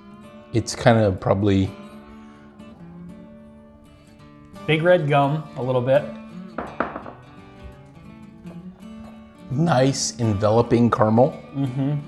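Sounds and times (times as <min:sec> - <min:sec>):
acoustic guitar music: 0:00.0 - 0:12.0
glass knocking on bar top: 0:06.6 - 0:07.4.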